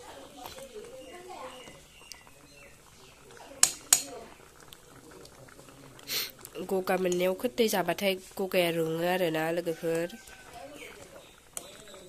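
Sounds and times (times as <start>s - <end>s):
curry bubbling and sizzling: 0.0s - 12.0s
ladle stirring: 0.0s - 12.0s
ladle ticking against pan: 0.0s - 12.0s.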